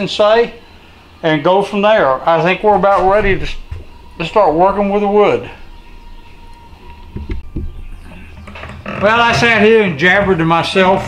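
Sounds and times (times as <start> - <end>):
steady low hum: 0.0 - 8.8.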